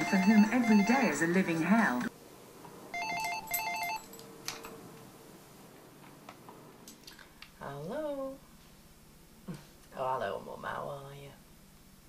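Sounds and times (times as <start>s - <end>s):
phone ringing electronic trills: 0.0s - 2.1s, 2.9s - 4.1s.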